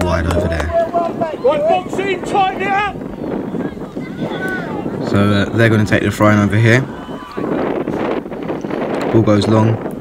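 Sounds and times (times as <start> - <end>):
distant shouts: 0.0 - 5.1, 6.5 - 8.3
wind buffeting microphone: 0.0 - 10.0.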